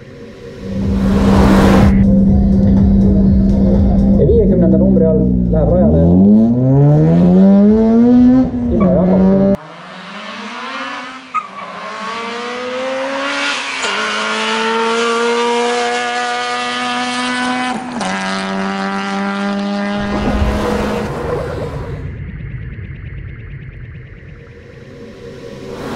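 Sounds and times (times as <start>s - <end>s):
car engine at full throttle: 0.0s - 25.9s.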